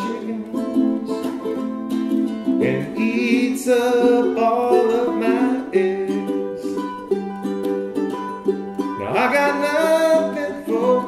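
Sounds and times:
ukuleles strumming chords: 0.0 - 11.0.

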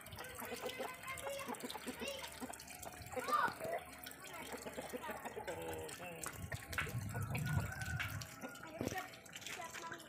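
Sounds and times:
distant people talking: 0.0 - 6.4.

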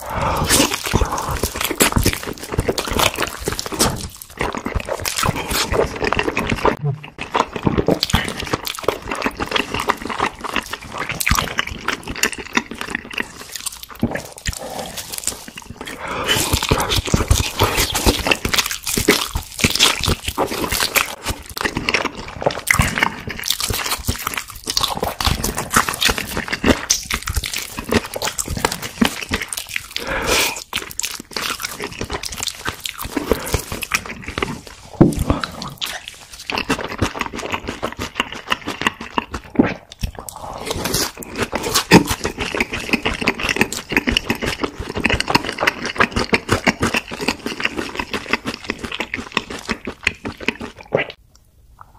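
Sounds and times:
chewing crispy fried chicken: 0.0 - 51.2.

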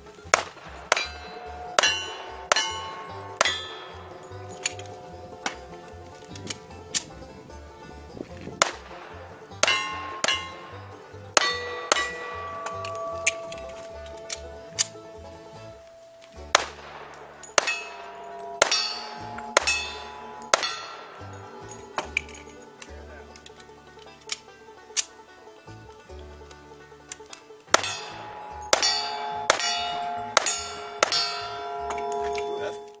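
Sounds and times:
steel target ringing: 0.0 - 24.9, 27.7 - 33.0
banjo music: 0.0 - 33.0
sharp gunshots: 0.3 - 4.0, 8.6 - 10.6, 16.5 - 21.7.

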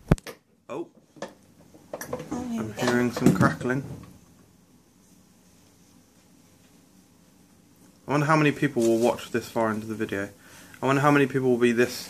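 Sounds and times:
person speaking: 2.2 - 4.0, 7.9 - 12.0
candle wick crackling: 7.7 - 10.9.

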